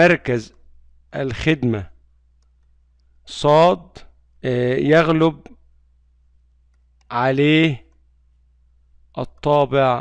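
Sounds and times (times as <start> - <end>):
man speaking: 0.0 - 2.0, 3.2 - 5.6, 7.1 - 8.0, 9.1 - 10.0
low steady hum: 0.0 - 10.0.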